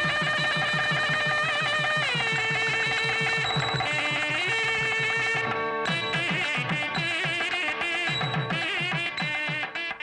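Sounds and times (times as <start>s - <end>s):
fast steady drum beat: 0.0s - 9.6s
wavering wind instrument melody: 0.0s - 10.0s.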